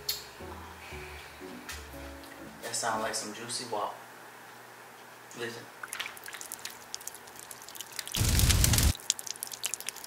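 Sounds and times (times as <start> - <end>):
loud low rushing burst: 8.2 - 8.9.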